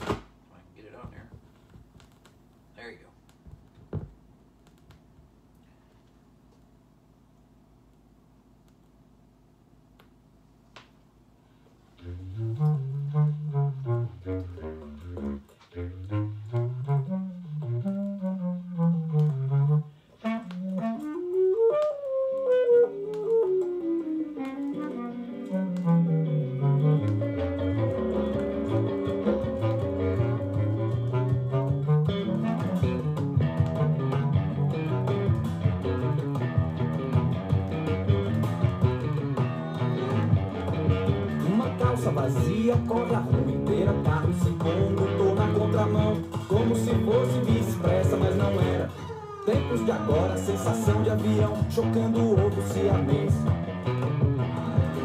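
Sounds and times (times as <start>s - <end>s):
vinyl record needle drop: 0.0s - 0.4s, 27.0s - 55.0s
band music from speakers: 23.6s - 55.0s.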